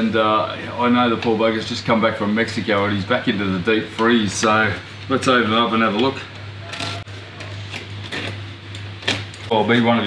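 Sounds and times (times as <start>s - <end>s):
steady low hum: 0.0s - 10.0s
gift wrapping paper tearing: 6.6s - 8.4s.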